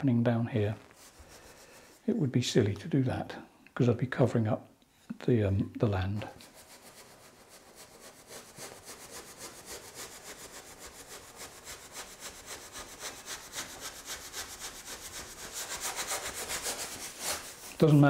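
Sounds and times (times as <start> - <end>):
bristle brush scrubbing canvas: 0.7 - 2.2, 6.3 - 18.0.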